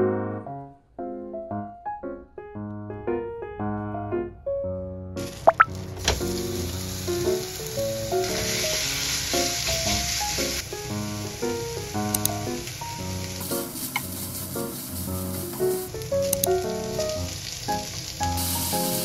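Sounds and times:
plucked background music: 5.4s - 6.6s
meat sizzling in a frying pan: 5.7s - 19.0s.

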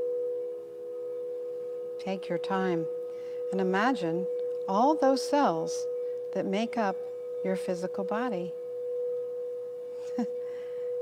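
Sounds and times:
crystal singing bowl ringing: 0.0s - 11.0s.

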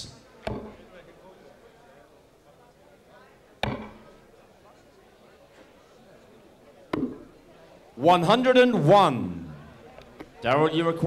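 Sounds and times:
darts hitting dartboard: 0.5s - 0.8s, 3.6s - 4.0s.

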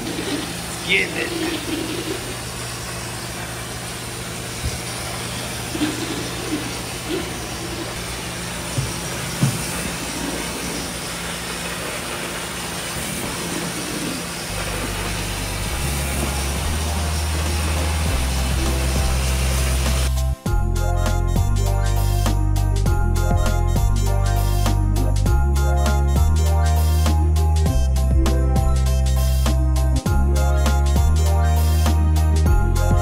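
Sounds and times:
tile spinner rushing hum: 0.0s - 20.2s
background music with bass line: 15.5s - 33.0s.

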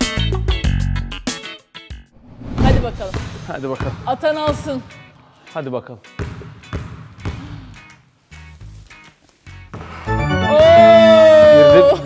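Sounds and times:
background music with bass: 0.0s - 2.1s
basketball bouncing on wooden floor: 6.2s - 7.4s.

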